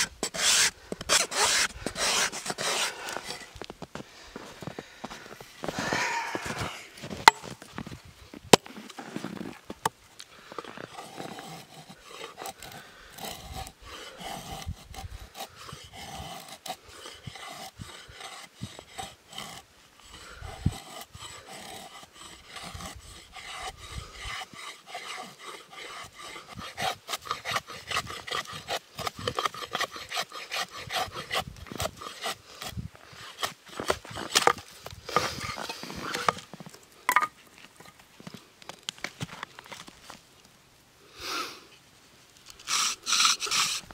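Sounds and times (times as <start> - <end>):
knife scraping wood: 0.0 - 7.7, 10.6 - 38.0, 42.5 - 43.9.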